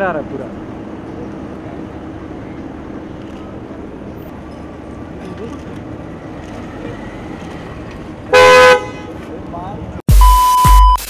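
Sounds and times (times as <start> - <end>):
street noise: 0.0 - 11.0
car horn honk: 8.3 - 9.3.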